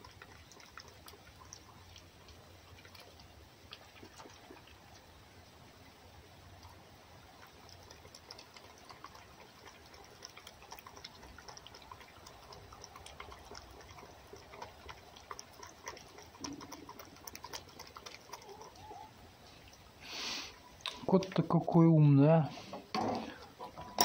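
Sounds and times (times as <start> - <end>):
fox lapping and licking: 0.0 - 21.9.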